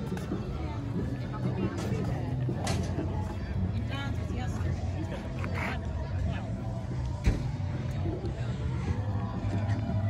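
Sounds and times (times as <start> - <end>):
people chatting: 0.0 - 6.8.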